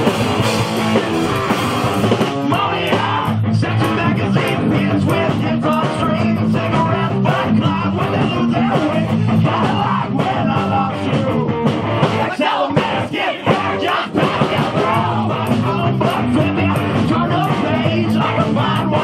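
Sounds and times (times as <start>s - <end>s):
punk rock band playing: 0.0s - 19.0s.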